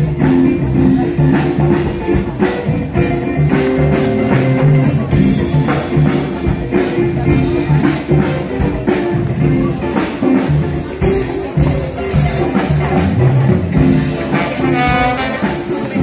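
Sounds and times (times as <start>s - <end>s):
big band playing jazz: 0.0s - 16.0s
drum kit steady beat: 0.0s - 16.0s
brass and saxophone section: 13.0s - 16.0s.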